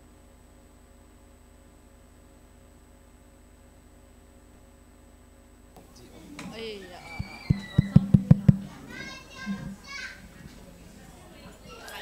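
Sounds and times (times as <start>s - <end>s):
dull thumps: 6.4s - 10.2s.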